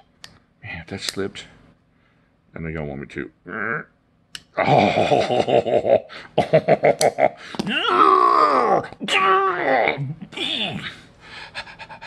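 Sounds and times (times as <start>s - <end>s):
man laughing hard: 4.6s - 7.4s
wordless wavering vocal sound: 7.7s - 11.1s.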